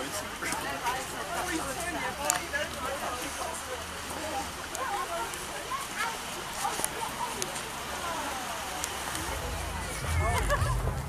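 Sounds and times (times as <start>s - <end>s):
faint crowd voices: 0.0s - 11.0s
rain hiss: 2.3s - 11.0s
low rumble on microphone: 9.2s - 11.0s.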